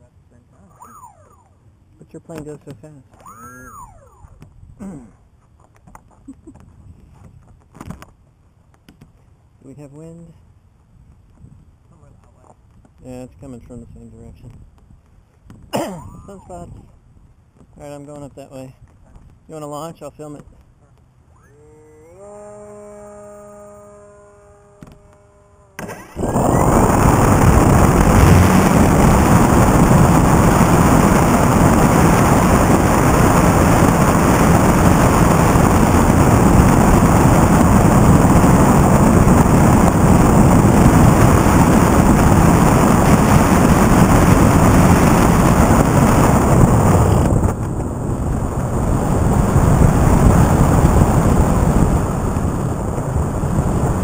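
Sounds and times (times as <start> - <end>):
model airplane motor and propeller: 20.0 - 47.8
wind rushing: 25.8 - 54.0.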